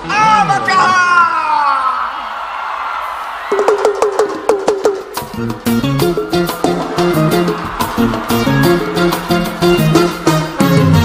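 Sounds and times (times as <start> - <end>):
concert crowd noise: 0.0 - 11.0.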